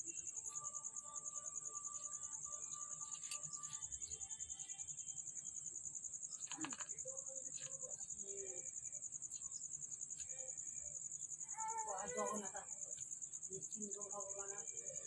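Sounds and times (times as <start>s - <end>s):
insects chirring: 0.0s - 15.0s.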